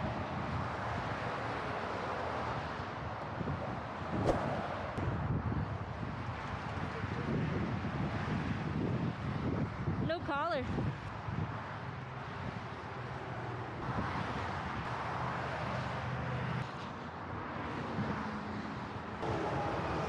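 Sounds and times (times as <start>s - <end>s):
highway traffic passing: 0.0s - 20.0s
wind buffeting microphone: 2.5s - 12.7s.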